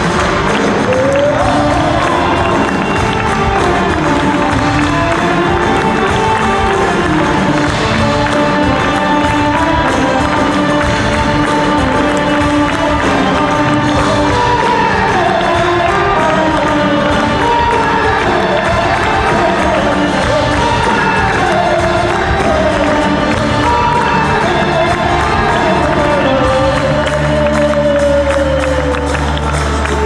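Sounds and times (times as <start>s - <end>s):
crowd noise: 0.0s - 30.0s
live rock band playing: 0.0s - 30.0s.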